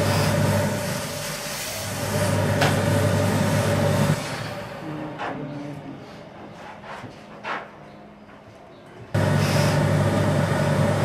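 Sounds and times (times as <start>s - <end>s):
steam iron hissing: 0.0s - 4.6s, 9.2s - 11.0s
low machine hum: 9.1s - 11.0s.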